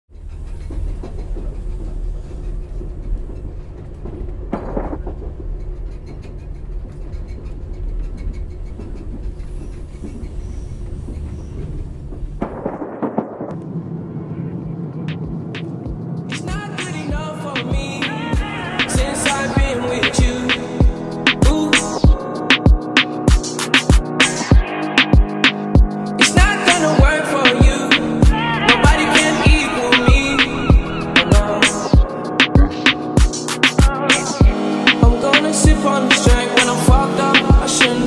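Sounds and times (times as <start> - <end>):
train carriage rumble: 0.1 - 12.6, 13.5 - 22.9, 26.4 - 33.3
music with steady beat: 14.6 - 38.0.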